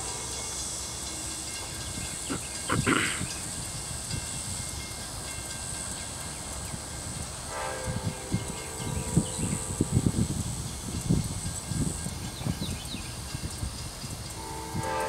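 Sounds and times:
distant locomotive horn: 0:00.0 - 0:01.8, 0:07.5 - 0:10.2, 0:14.4 - 0:15.0.

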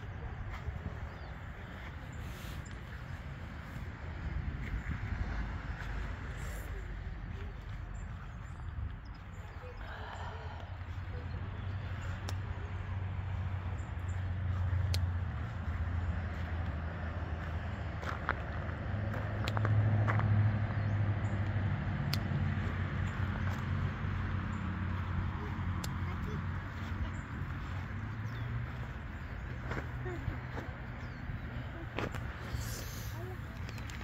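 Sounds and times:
low outdoor rumble: 0:00.0 - 0:34.0.

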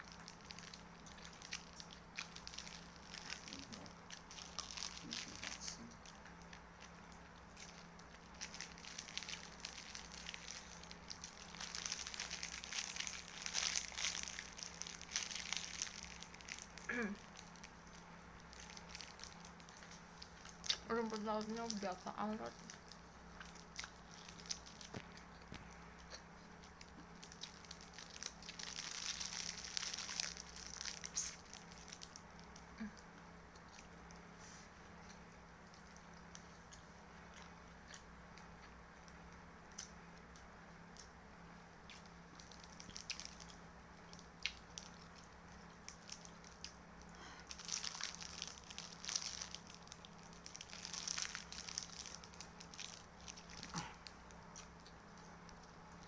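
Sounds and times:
plastic wrapper crinkling: 0:00.0 - 0:34.3, 0:41.9 - 0:56.0
desk fan humming: 0:00.0 - 0:56.0
chewing and biting: 0:22.6 - 0:32.6.

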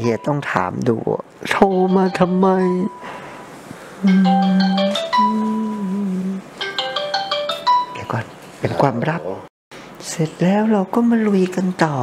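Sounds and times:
marimba-like phone ringtone: 0:01.6 - 0:03.3, 0:04.0 - 0:05.4, 0:06.6 - 0:08.2
low held tone: 0:04.0 - 0:06.4.

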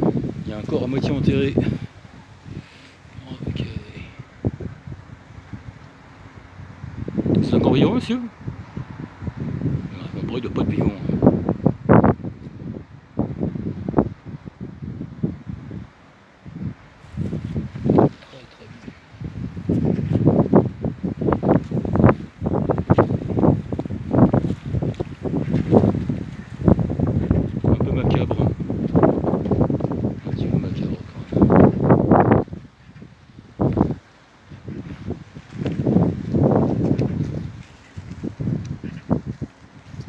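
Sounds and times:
wind rumble on microphone: 0:00.0 - 0:40.0.

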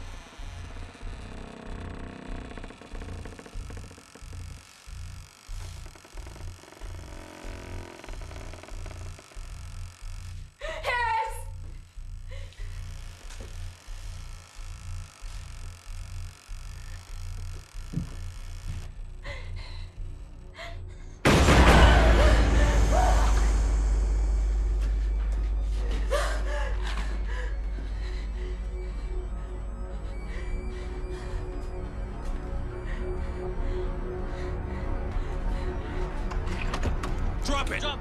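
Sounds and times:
faint sustained drone: 0:00.0 - 0:36.3
low pulsing beat: 0:02.6 - 0:20.6, 0:22.2 - 0:36.4.

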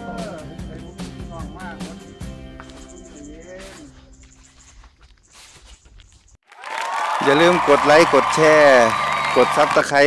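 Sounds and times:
applause-like noise: 0:06.4 - 0:10.0.

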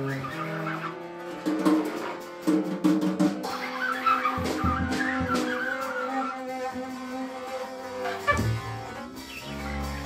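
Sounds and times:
trumpet: 0:00.0 - 0:10.0
double bass: 0:07.9 - 0:10.0.

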